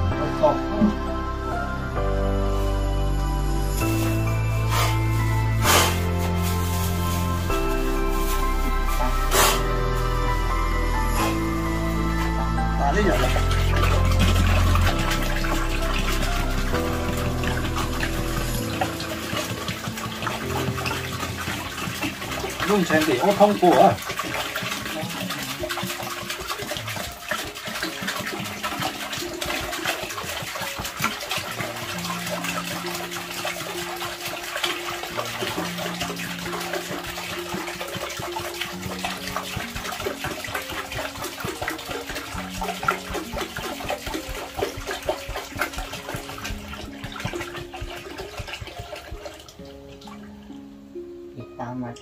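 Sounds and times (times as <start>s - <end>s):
background music with held notes: 0.0s - 52.0s
water pouring into plastic bin: 3.8s - 10.3s, 11.2s - 50.6s.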